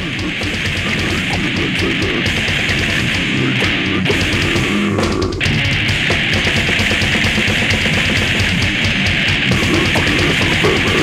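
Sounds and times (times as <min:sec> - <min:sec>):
distorted electric guitar: 0:00.0 - 0:11.0
fast dense drumming: 0:00.0 - 0:11.0.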